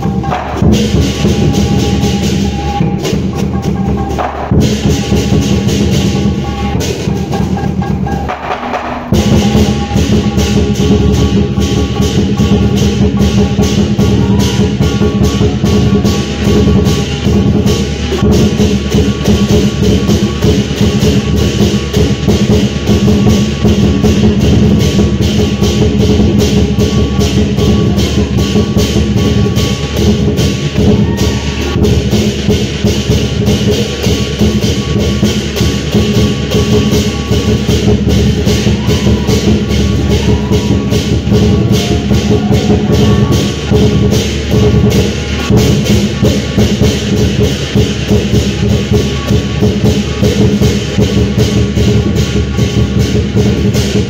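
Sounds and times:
fast percussion music with drums: 0.0 - 54.0.

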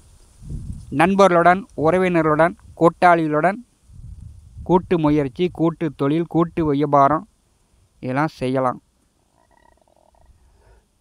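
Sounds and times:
rapidly pulsed animal call: 9.2 - 11.0.

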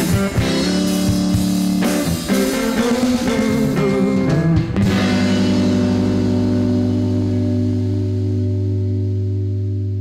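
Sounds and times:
electric guitar chord ringing: 0.0 - 10.0.

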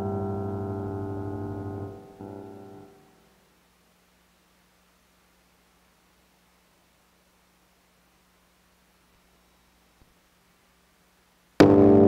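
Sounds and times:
guitar chord ringing: 0.0 - 3.2, 11.6 - 12.0.

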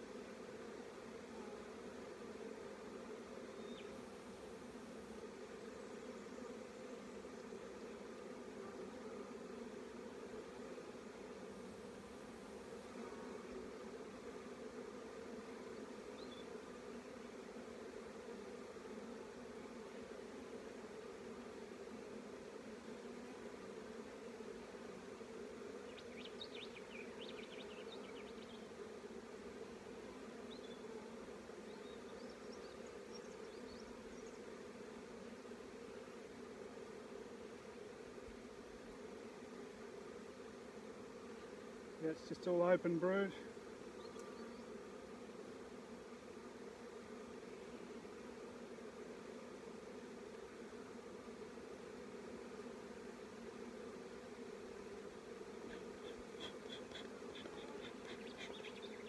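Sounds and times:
honeybees buzzing: 0.0 - 59.0.

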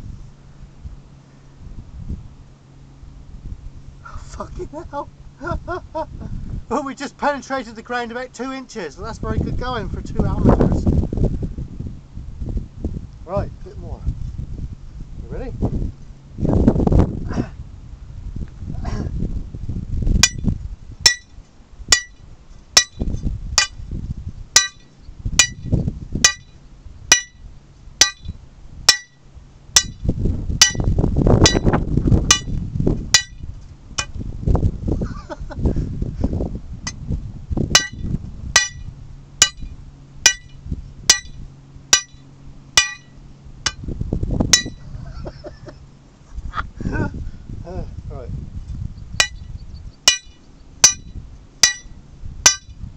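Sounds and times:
low uneven rumble: 0.0 - 52.9
hammer striking steel rod: 20.2 - 20.4, 21.1 - 22.2, 22.8 - 23.8, 24.6 - 27.4, 28.0 - 29.2, 29.8 - 30.0, 30.6 - 31.7, 32.3 - 32.6, 33.2 - 33.4, 37.8 - 38.0, 38.6 - 39.7, 40.3 - 42.2, 42.8 - 43.8, 44.6 - 44.8, 49.2 - 49.4, 50.1 - 51.9, 52.5 - 52.7.

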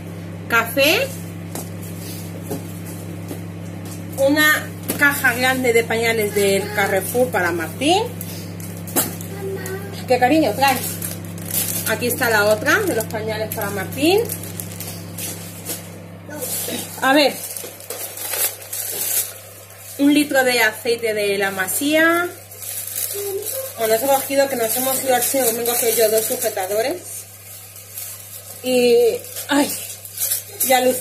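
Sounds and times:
steady low hum: 0.0 - 31.0
plastic packaging rustling: 4.9 - 20.7, 21.4 - 31.0
faint voice: 9.3 - 10.1.

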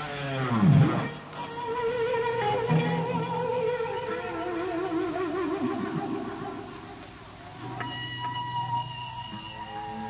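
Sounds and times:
electric guitar bending notes: 0.0 - 10.0
high-pitched guitar feedback tones: 0.0 - 10.0.

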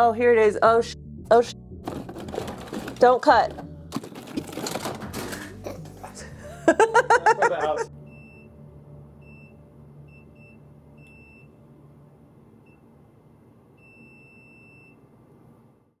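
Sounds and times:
multimeter beeps: 8.1 - 8.5, 9.2 - 11.6, 13.8 - 15.0.

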